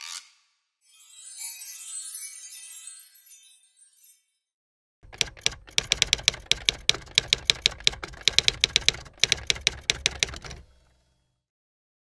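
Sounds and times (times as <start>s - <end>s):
typewriter key clacks: 5.0s - 10.9s.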